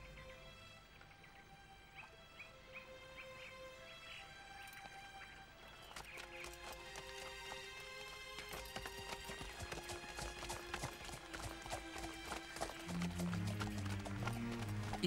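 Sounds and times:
background music of held notes: 0:00.0 - 0:15.0
cartoon horses galloping: 0:05.9 - 0:15.0.

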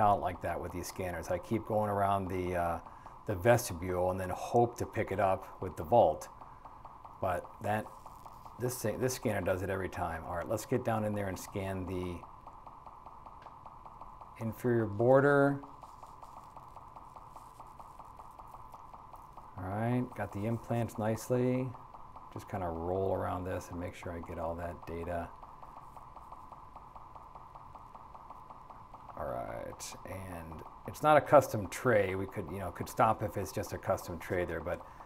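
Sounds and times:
scanner humming and ticking: 0:00.0 - 0:35.0.

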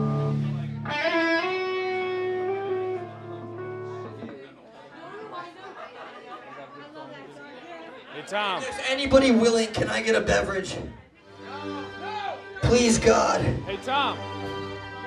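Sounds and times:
electric guitar chords ringing: 0:00.0 - 0:04.2
faint crowd talking: 0:00.0 - 0:15.0.

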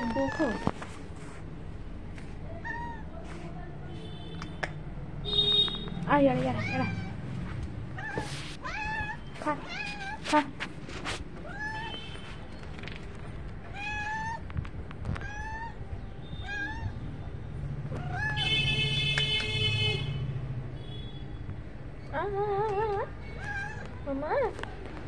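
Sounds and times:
cat meowing: 0:08.0 - 0:10.3, 0:11.4 - 0:12.0, 0:13.7 - 0:14.4, 0:15.1 - 0:17.0, 0:17.9 - 0:18.5, 0:23.4 - 0:24.0.

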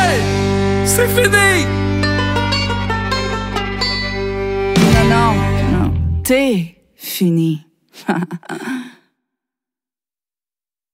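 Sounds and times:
breathy vocal exhalation: 0:08.4 - 0:09.1.

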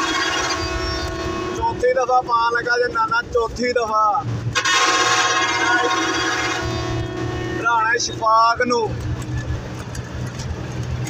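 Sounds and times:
bus engine running: 0:00.0 - 0:11.0
road noise: 0:00.0 - 0:11.0.

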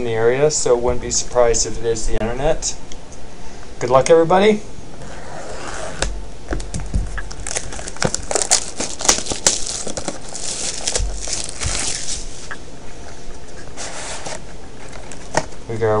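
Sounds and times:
plastic shrink wrap crinkling: 0:06.6 - 0:12.5, 0:14.7 - 0:15.4.

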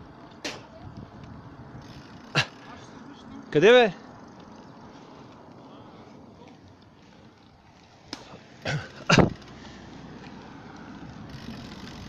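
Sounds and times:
bicycle tyres rolling on asphalt: 0:00.0 - 0:12.0.

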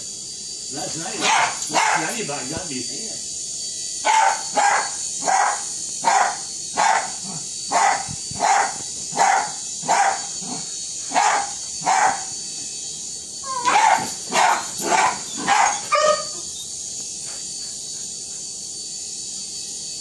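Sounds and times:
small dog barking: 0:01.2 - 0:02.2, 0:04.0 - 0:12.3, 0:13.5 - 0:16.4.

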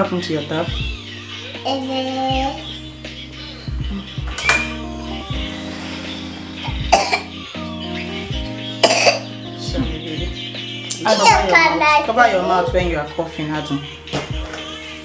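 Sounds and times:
background music with bass line: 0:00.0 - 0:15.0
child coughing: 0:06.6 - 0:07.4, 0:08.8 - 0:09.3.

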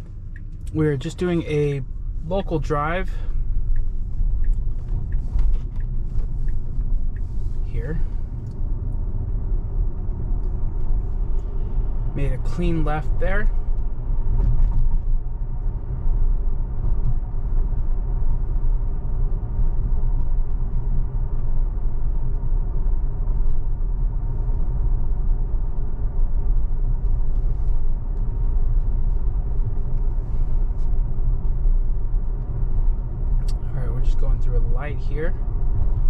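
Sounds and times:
tyre and road rumble: 0:00.0 - 0:36.0.

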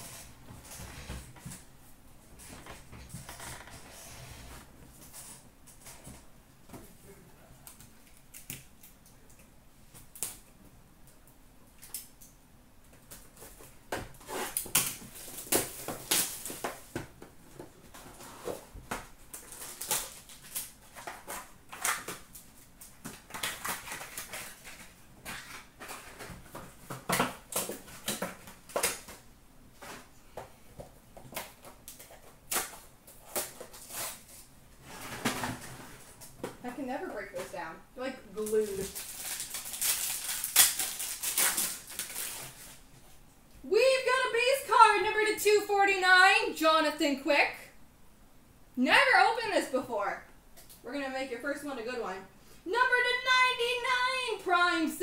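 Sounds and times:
crinkling wrappers and cardboard: 0:11.7 - 0:34.5, 0:38.4 - 0:43.2.

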